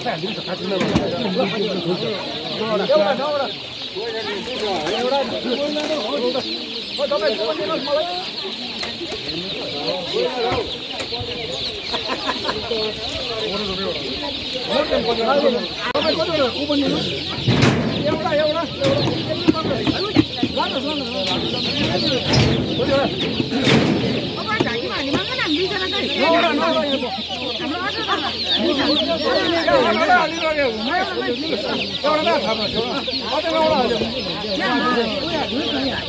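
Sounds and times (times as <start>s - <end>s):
baby chicks peeping: 0.0s - 36.0s
crowd of people talking: 0.0s - 36.0s
baskets and boxes knocking: 16.9s - 25.8s.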